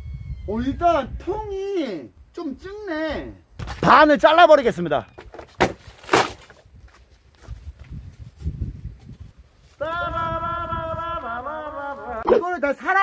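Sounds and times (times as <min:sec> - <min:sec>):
styrofoam crunching and scraping: 0:05.6 - 0:06.6.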